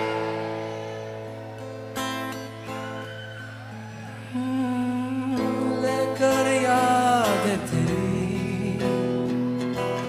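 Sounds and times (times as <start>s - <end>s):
live concert music: 0.0s - 10.0s.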